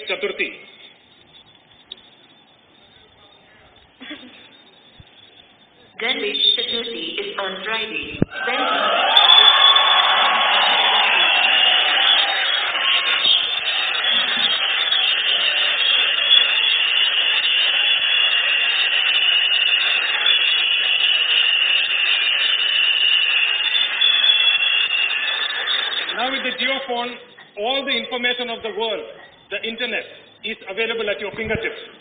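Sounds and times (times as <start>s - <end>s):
large audience applauding: 8.5s - 27.2s.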